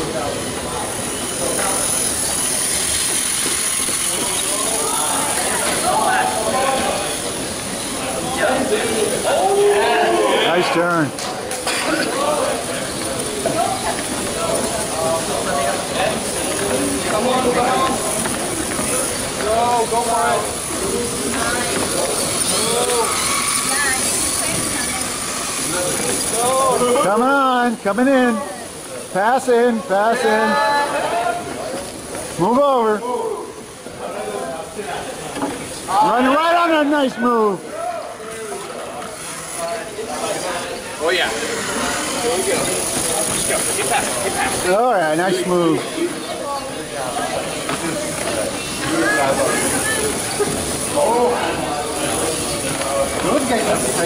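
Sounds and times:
onlookers chattering and calling: 0:00.0 - 0:54.0
steady background noise: 0:00.0 - 0:54.0
steady hiss: 0:00.0 - 0:54.0
man urging: 0:35.9 - 0:37.6.

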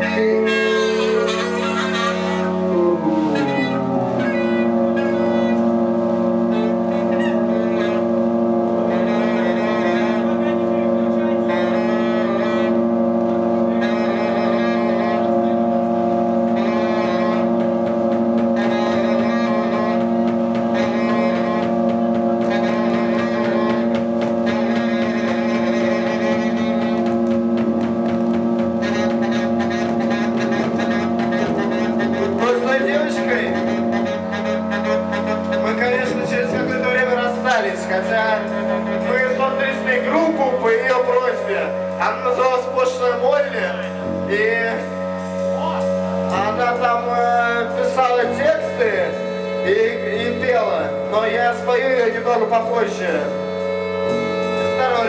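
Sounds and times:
held drone chord: 0:00.0 - 0:55.0
wavering higher melody line: 0:00.0 - 0:55.0.

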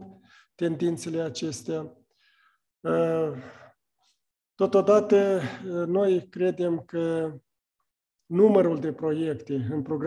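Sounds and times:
faint breath in: 0:02.1 - 0:02.7.

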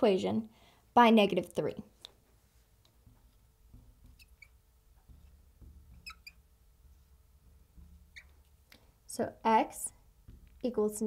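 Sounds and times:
marker squeaking on glass: 0:03.0 - 0:08.7.

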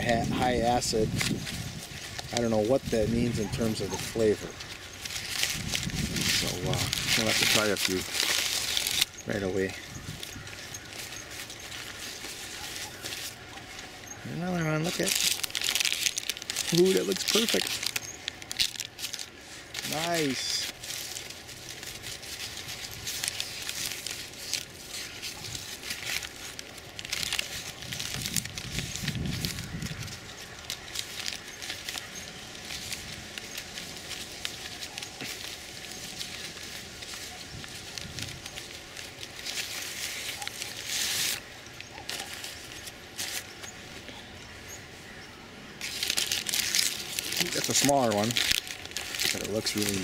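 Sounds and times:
paper bags crinkling and rustling: 0:00.0 - 0:45.2, 0:45.8 - 0:50.0
paper crackling bursts: 0:00.0 - 0:45.2, 0:45.8 - 0:50.0.

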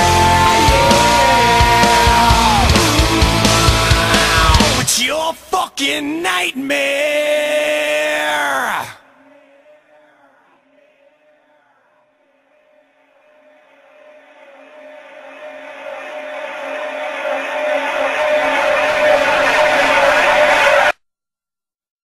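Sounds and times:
steady low drone: 0:00.0 - 0:04.8.

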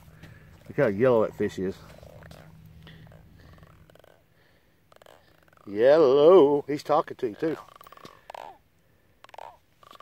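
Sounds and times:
catfish grunting: 0:01.3 - 0:10.0.

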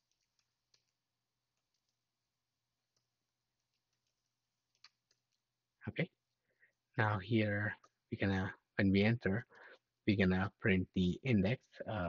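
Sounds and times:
computer keyboard keystrokes: 0:00.0 - 0:01.0, 0:01.6 - 0:02.0, 0:02.9 - 0:05.4.

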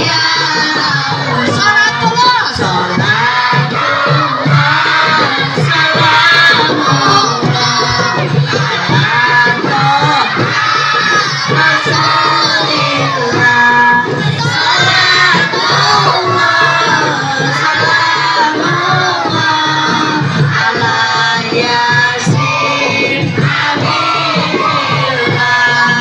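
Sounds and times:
crowd singing together: 0:00.0 - 0:26.0
hand drums beating: 0:00.0 - 0:26.0.

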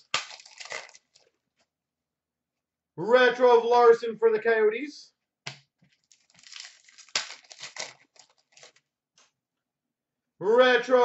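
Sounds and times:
foil wrapper crinkling: 0:00.0 - 0:01.3, 0:05.9 - 0:08.9.

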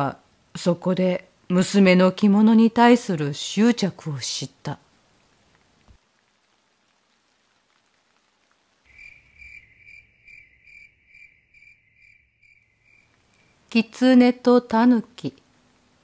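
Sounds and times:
insect chirping: 0:08.9 - 0:14.0.

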